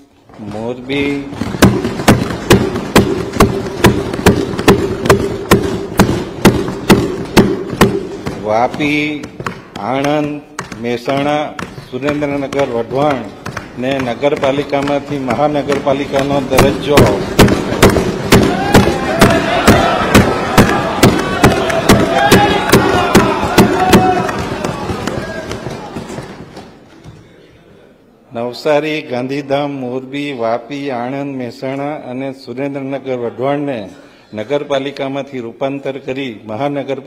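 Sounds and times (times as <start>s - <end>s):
thumping on wooden desks: 0.5s - 26.8s.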